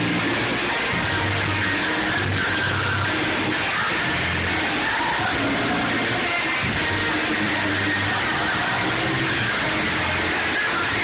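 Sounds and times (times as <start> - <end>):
gospel choir singing with band: 0.0 - 11.0.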